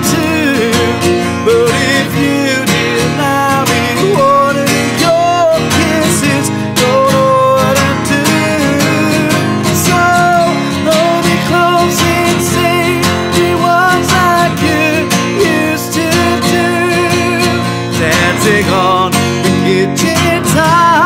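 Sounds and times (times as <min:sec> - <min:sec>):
man singing: 0:00.0 - 0:21.0
strummed acoustic guitar: 0:00.0 - 0:21.0.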